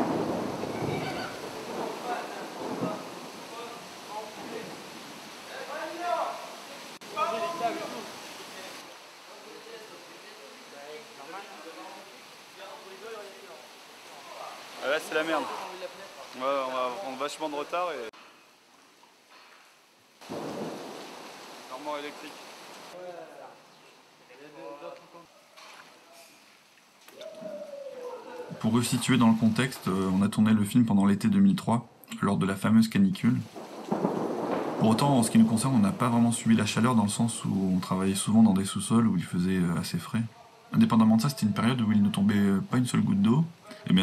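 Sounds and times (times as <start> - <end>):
thunder rumbling: 0.0 - 6.4, 20.2 - 23.0, 33.4 - 38.4
heavy rain: 0.0 - 18.6, 19.5 - 24.5, 27.2 - 31.4, 32.9 - 44.0
background hiss: 0.0 - 44.0.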